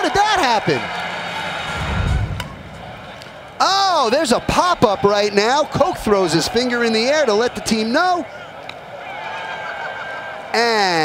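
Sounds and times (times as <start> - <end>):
low rumble: 1.3 - 3.6.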